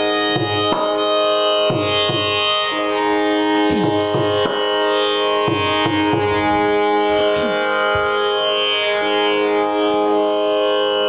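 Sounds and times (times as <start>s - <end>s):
tanpura drone: 0.0s - 11.0s.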